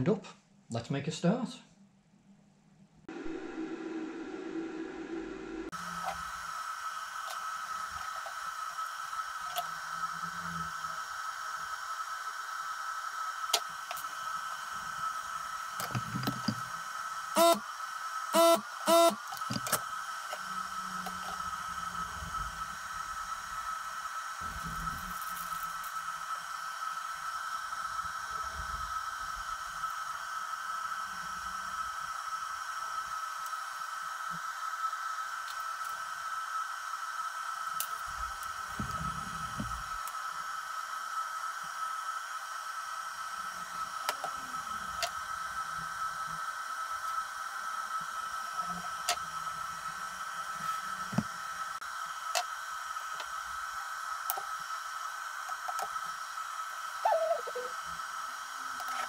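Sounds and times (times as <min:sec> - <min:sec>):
high-pitched electronic whine: 0:03.1 - 0:13.2, 0:13.8 - 0:33.4.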